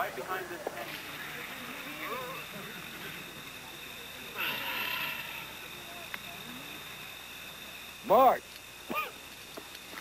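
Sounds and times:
faint indistinct voices: 0.0s - 9.3s
high-pitched whine: 0.0s - 10.0s.

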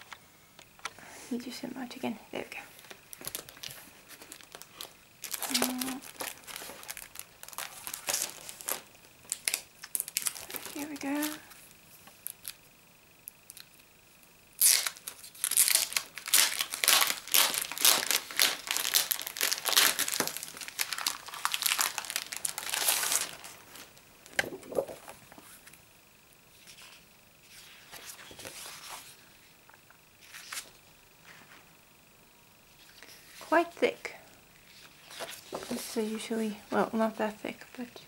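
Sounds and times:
plastic sleeve crinkling: 2.8s - 11.5s, 14.6s - 25.5s.

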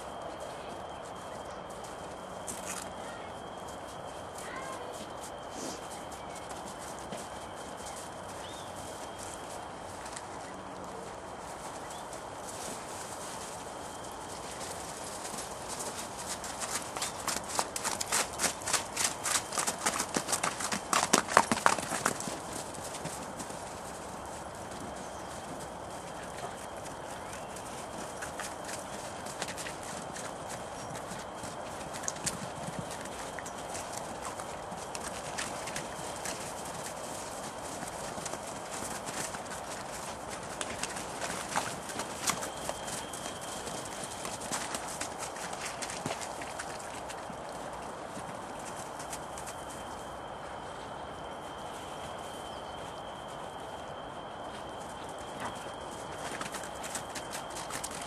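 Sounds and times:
hooves clattering on hard ground: 0.0s - 58.0s.

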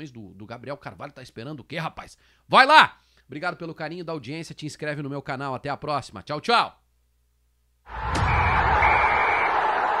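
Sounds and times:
loud noisy sound effect: 7.9s - 10.0s.

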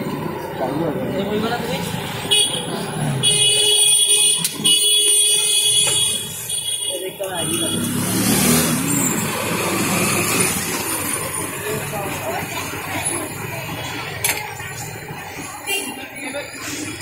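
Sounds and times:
people chattering: 0.0s - 17.0s.

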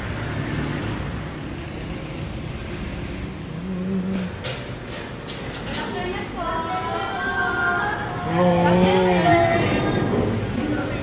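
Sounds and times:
traffic rumble: 0.0s - 11.0s.

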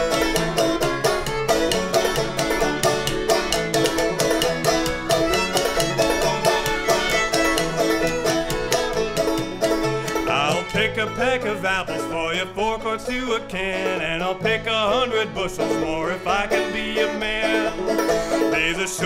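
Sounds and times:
banjo: 0.0s - 19.0s
bowed fiddle: 0.0s - 19.0s
plucked cello bass: 0.0s - 19.0s.

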